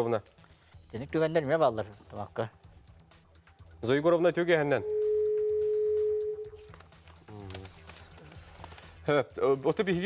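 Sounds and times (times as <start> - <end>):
steady pure tone: 4.8 - 6.6.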